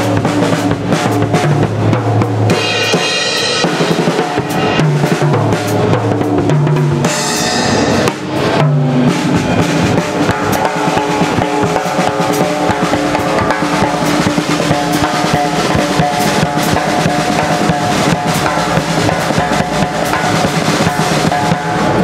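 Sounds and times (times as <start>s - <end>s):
cymbal crashes: 0.0s - 22.0s
drum kit groove: 0.0s - 22.0s.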